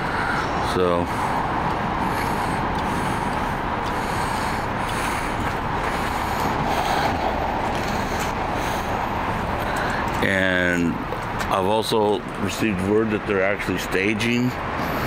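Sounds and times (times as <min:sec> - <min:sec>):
road traffic rushing: 0:00.0 - 0:15.0.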